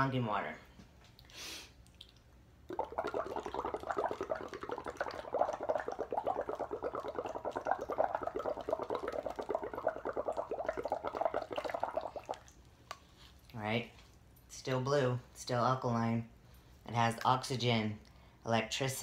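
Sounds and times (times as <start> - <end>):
water bubbling through a straw: 2.0 - 12.6.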